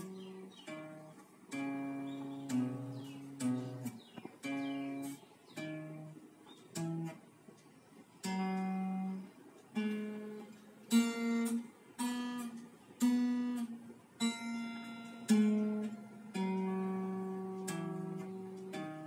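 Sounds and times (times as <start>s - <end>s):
acoustic guitar plucked notes: 0.0s - 19.0s.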